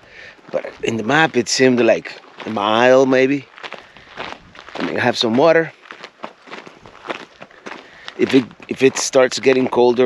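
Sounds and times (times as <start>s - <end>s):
footsteps on gravel: 0.2s - 10.0s.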